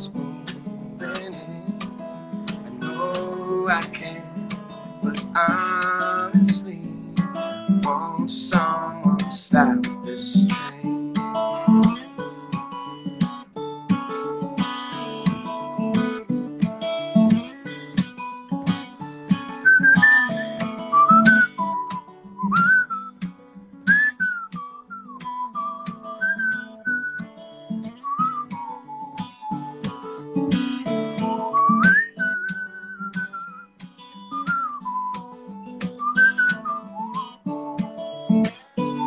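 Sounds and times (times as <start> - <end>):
fingerpicked acoustic guitar: 0.0 - 39.0
whistled melody: 19.3 - 39.0.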